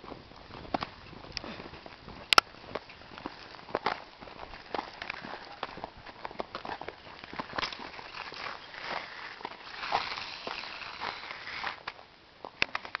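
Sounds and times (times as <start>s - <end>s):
footsteps: 0.0s - 13.0s
grit clicking: 6.4s - 12.0s
rc truck motor and tyres hissing: 7.5s - 12.0s.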